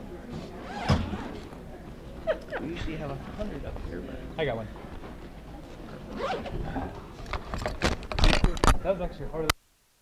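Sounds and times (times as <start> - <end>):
bag zipper rasping: 0.6 - 1.4, 6.1 - 6.6.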